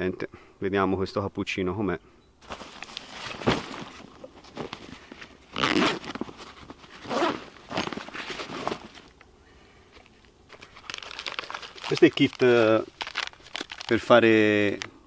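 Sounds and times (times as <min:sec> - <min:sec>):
nylon pouch ripping and rustling: 0:02.4 - 0:09.2, 0:10.0 - 0:14.9.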